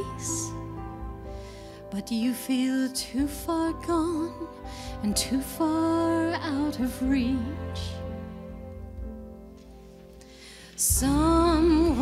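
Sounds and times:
woman singing: 0.0s - 0.7s, 1.9s - 8.2s, 10.8s - 12.0s
instrumental backing: 0.0s - 12.0s.

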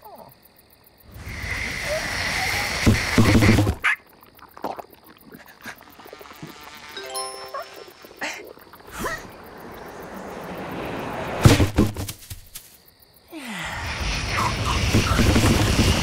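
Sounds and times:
sharp cartoon sound accents: 7.0s - 8.2s.

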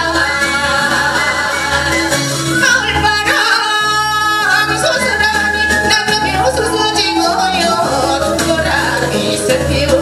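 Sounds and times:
instrumental backing track: 0.0s - 10.0s
woman singing into a microphone: 0.0s - 10.0s.

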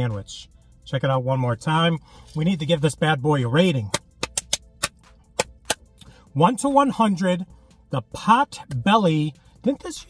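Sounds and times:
sharp hand claps: 3.9s - 5.8s.

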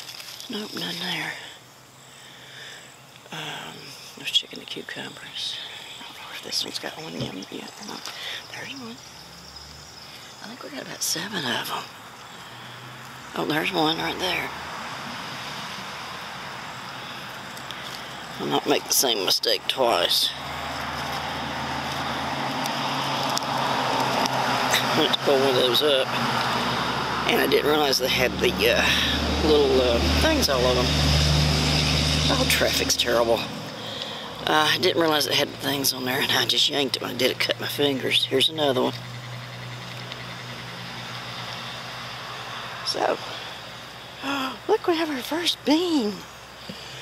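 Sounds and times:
road traffic passing: 0.0s - 47.0s.

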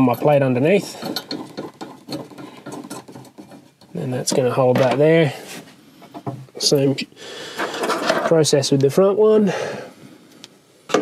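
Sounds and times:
metal parts clicking and scraping: 0.0s - 5.0s, 7.6s - 8.4s.

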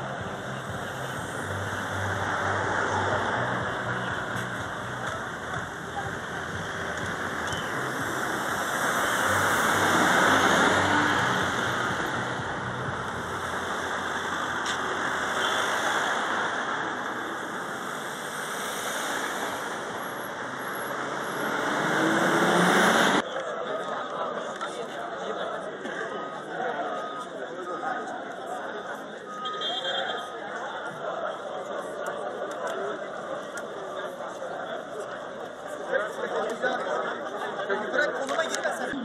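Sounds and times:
vehicles driving past: 0.0s - 29.1s.

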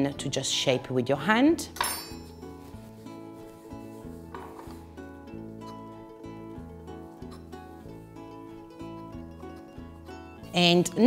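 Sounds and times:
plucked string music: 1.8s - 11.0s.

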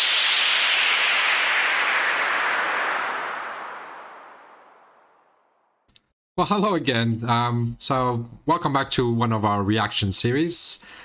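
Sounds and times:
hissing whoosh: 0.0s - 5.5s.

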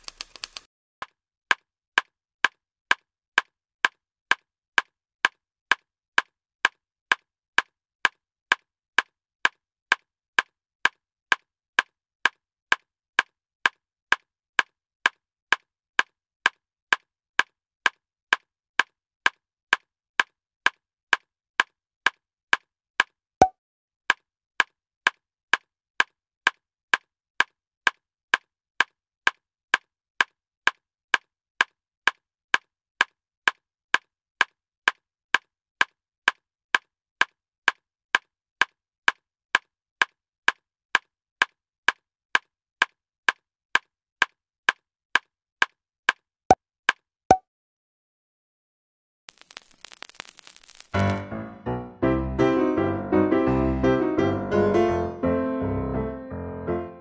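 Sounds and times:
evenly spaced ticks: 0.0s - 0.6s.

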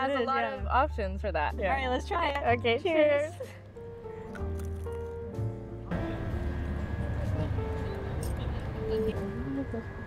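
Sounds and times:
faint background music: 0.0s - 10.0s
low outdoor rumble: 5.4s - 10.0s.

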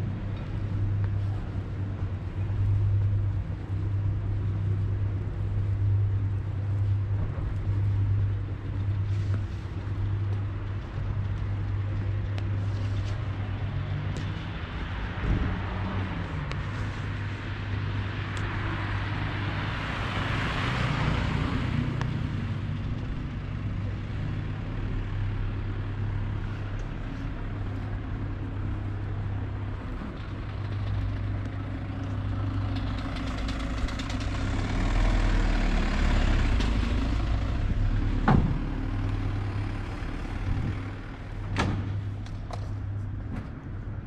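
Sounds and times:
vehicle passing: 0.0s - 42.2s
road traffic hum: 0.0s - 44.0s.

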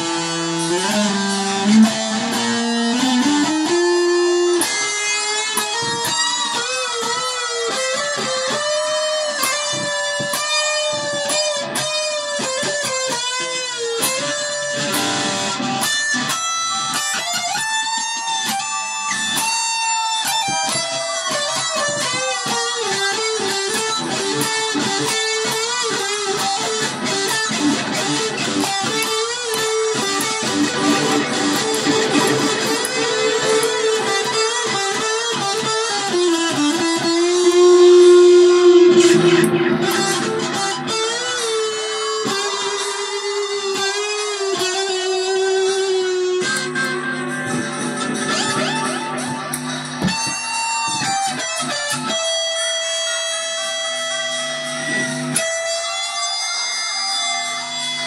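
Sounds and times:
electric guitar through amp: 0.0s - 58.0s.

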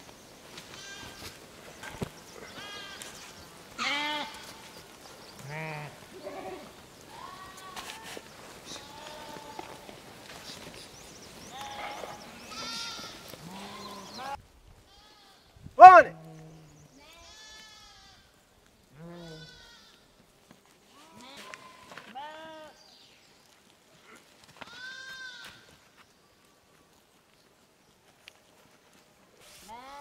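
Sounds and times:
sheep bleating: 2.4s - 4.7s, 5.4s - 9.9s, 11.5s - 16.4s, 18.9s - 20.0s, 24.6s - 25.7s.

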